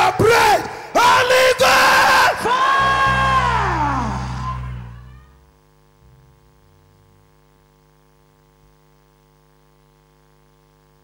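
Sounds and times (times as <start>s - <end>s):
congregation and preacher shouting: 0.0s - 5.1s
faint electrical hum: 0.0s - 11.0s
low held music notes: 6.0s - 7.3s.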